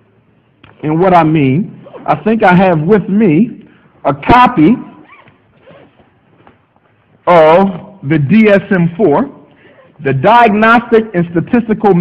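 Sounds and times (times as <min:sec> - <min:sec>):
zipper-like rasp: 0:04.9 - 0:06.2.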